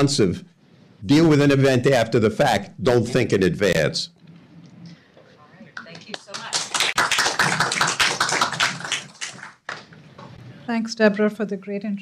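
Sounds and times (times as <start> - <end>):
audience applauding: 5.7 - 10.0.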